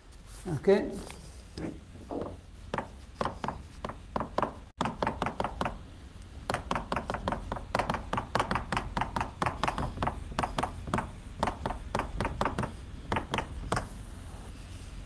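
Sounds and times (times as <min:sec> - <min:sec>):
chalk tapping on a blackboard: 0:02.2 - 0:05.8, 0:06.4 - 0:14.1.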